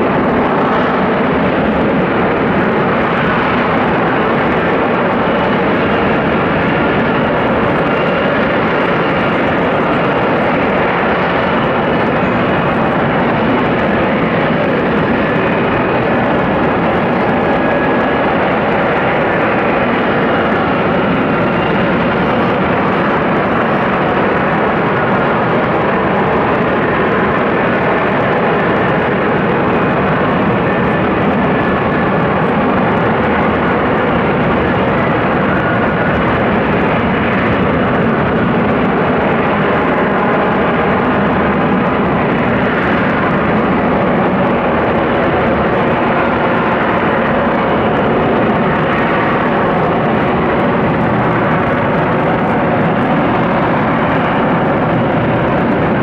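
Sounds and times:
jet aircraft hovering: 0.0 - 56.0.

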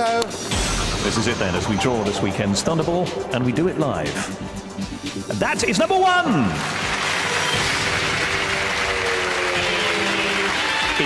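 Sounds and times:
game show music sting: 6.1 - 11.0
studio audience applauding: 6.2 - 11.0.

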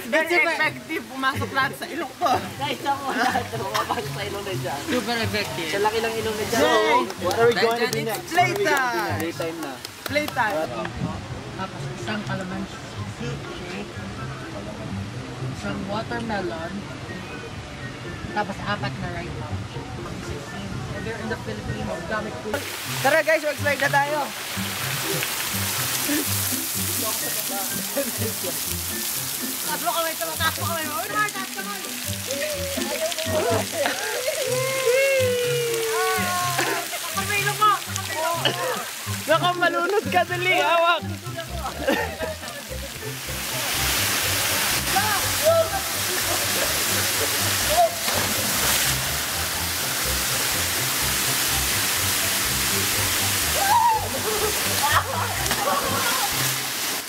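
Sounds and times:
water pouring and spraying: 0.0 - 10.7, 22.5 - 57.0
background music with bass line: 0.0 - 56.8.

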